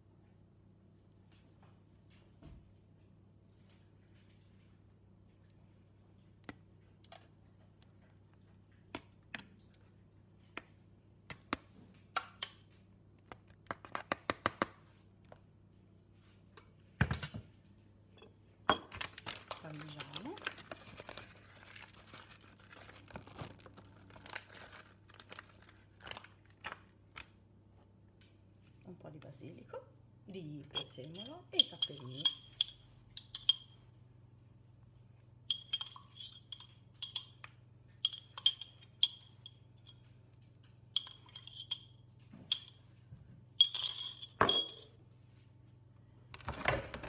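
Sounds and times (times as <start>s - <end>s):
foil crinkling: 19.0s - 27.2s.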